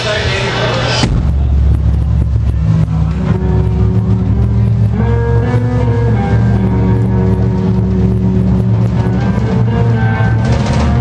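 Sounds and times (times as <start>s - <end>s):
distorted low bass drone: 0.0s - 11.0s
guitar notes: 1.0s - 11.0s.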